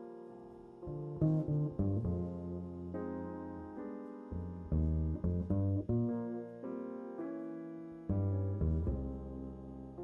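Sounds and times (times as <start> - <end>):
double bass plucked: 0.9 - 6.5, 8.0 - 10.0.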